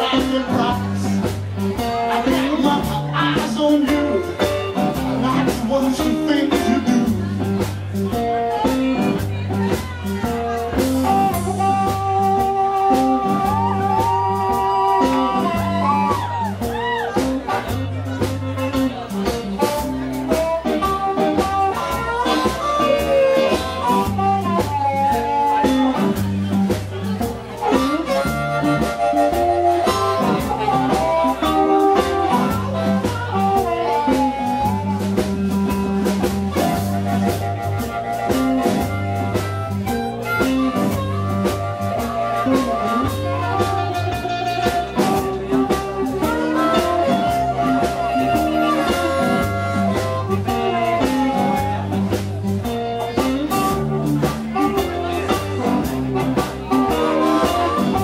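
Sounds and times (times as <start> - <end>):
drum kit: 0.0 - 58.0
electric bass: 0.0 - 58.0
electric guitar: 0.0 - 58.0
harmonica: 27.6 - 35.7, 36.5 - 52.1, 53.6 - 58.0.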